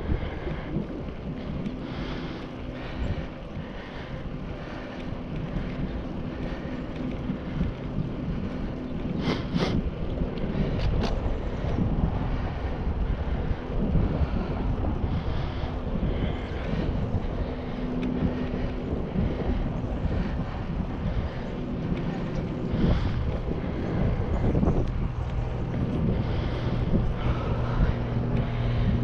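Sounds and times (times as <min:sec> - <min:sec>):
tyre noise on asphalt: 0:00.0 - 0:29.0
wind buffeting microphone: 0:00.0 - 0:29.0.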